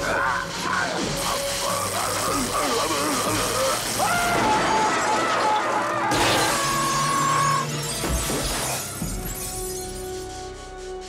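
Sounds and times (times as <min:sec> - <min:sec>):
dramatic film score music: 0:00.0 - 0:11.0
glass pane shattering: 0:03.8 - 0:10.0
glass shards falling: 0:07.8 - 0:10.0.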